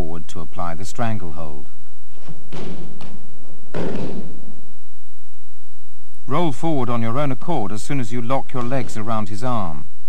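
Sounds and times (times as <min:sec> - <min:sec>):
bodies thudding on mat: 0:02.2 - 0:04.4.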